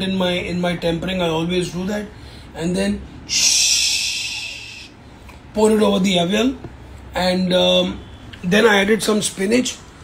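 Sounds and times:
man hissing with mouth: 3.3s - 5.0s.

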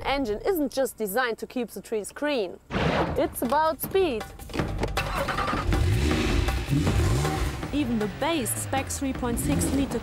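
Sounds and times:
backing music track: 3.3s - 10.0s
car engine revving: 5.0s - 10.0s.

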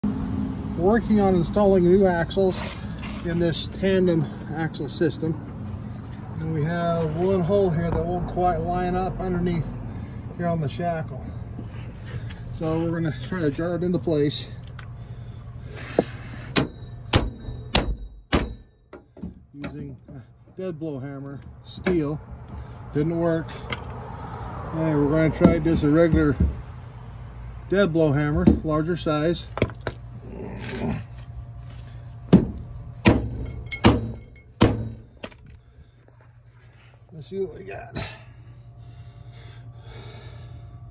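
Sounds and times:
hammer striking steel spring: 16.5s - 19.1s.

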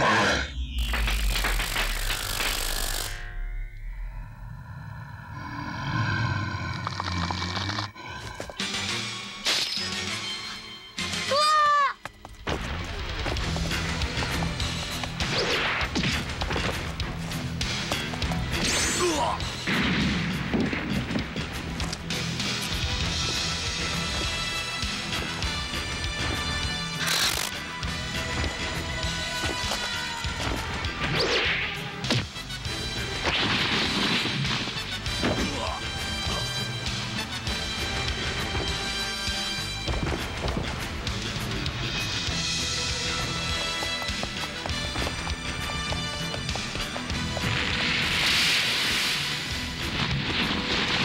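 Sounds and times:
background music: 7.4s - 51.0s.

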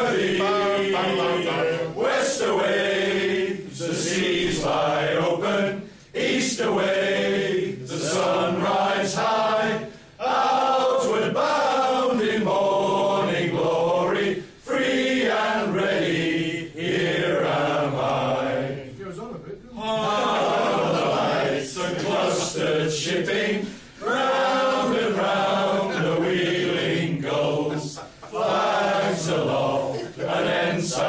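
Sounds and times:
men singing in unison: 0.0s - 18.8s, 19.8s - 31.0s
singers breathing: 23.6s - 24.0s.

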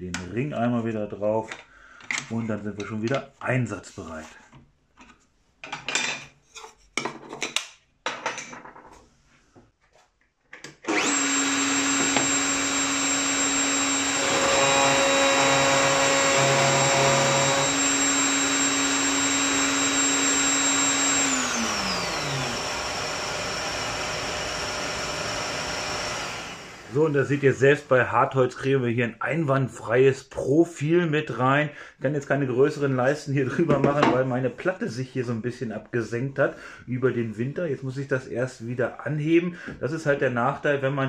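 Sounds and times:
wood router motor whine: 10.9s - 27.1s
router cutting wood: 10.9s - 27.2s.

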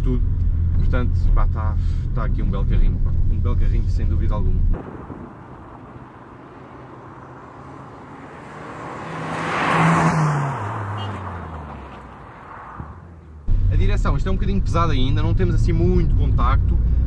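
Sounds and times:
car driving past: 4.8s - 13.8s.

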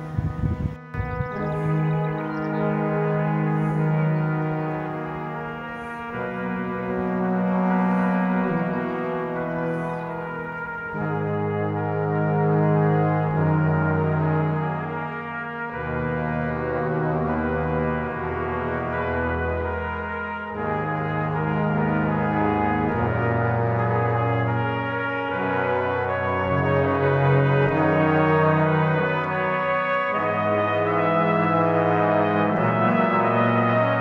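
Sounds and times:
slow brass music chords: 0.0s - 34.0s.

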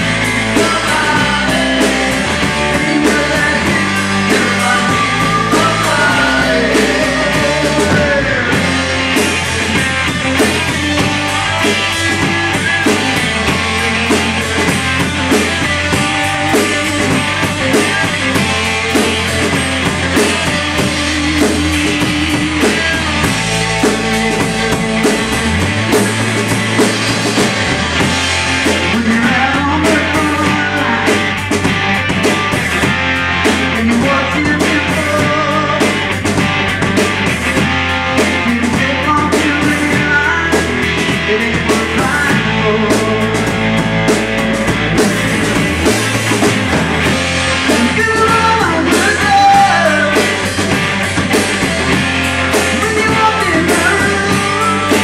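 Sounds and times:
live rock band playing: 0.0s - 55.0s.

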